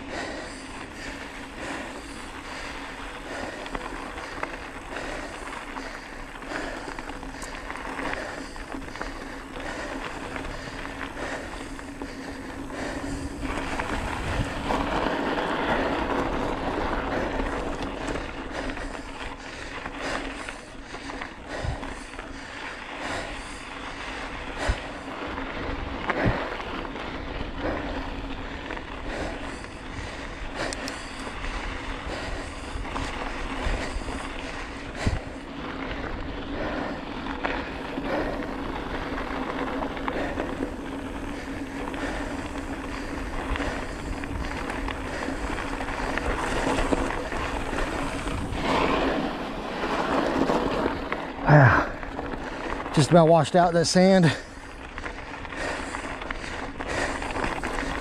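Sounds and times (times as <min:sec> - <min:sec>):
bicycle tyres rolling on gravel: 0:00.0 - 0:58.0
bike rattling: 0:00.0 - 0:58.0.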